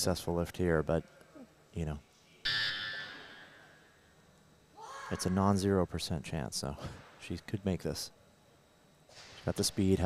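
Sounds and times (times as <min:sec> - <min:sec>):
electronic buzzer tone: 0:02.4 - 0:03.7.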